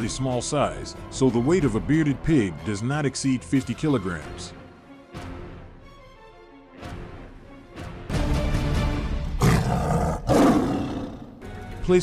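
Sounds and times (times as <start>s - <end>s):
background music: 0.0s - 12.0s
loud animal roars: 9.4s - 11.4s.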